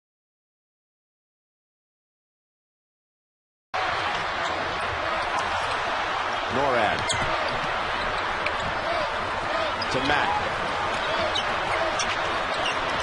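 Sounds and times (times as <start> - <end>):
arena crowd noise: 3.8 - 13.0.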